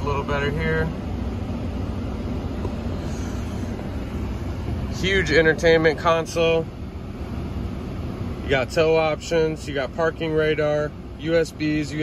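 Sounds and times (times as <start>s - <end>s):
cabin fan running: 0.0s - 12.0s
engine idling rumble: 0.0s - 12.0s.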